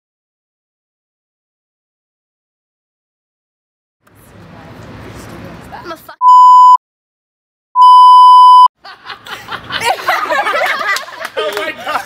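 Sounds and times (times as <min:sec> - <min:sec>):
censor bleep: 0:06.2 - 0:06.8, 0:07.8 - 0:08.7.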